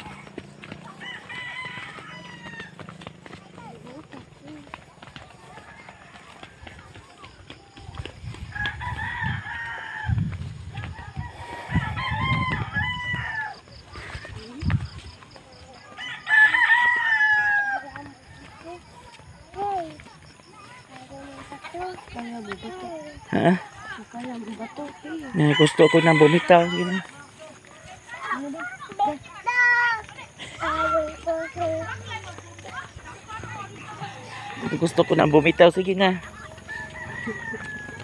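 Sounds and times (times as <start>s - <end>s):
rooster crowing: 0.6s - 3.2s, 8.4s - 13.8s, 15.8s - 18.4s, 25.2s - 27.1s, 34.0s - 38.0s.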